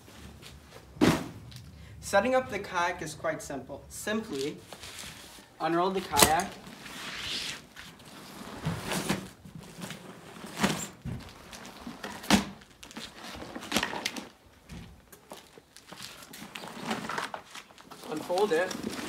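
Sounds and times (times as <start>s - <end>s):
fabric rustling: 4.3s - 12.1s.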